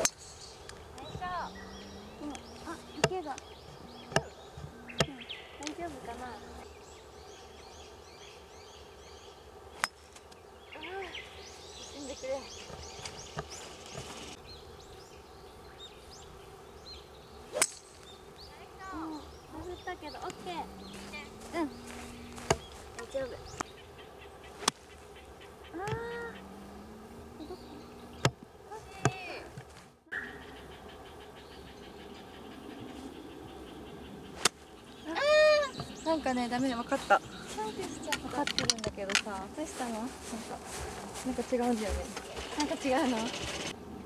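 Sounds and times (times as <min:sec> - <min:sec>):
birds chirping: 0:00.0 - 0:44.0
golf club striking ball: 0:17.5 - 0:18.0
woman exclaiming loudly: 0:35.1 - 0:35.7.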